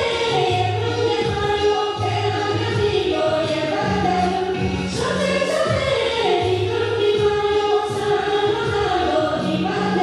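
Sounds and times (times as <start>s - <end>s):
group singing folk song: 0.0s - 10.0s.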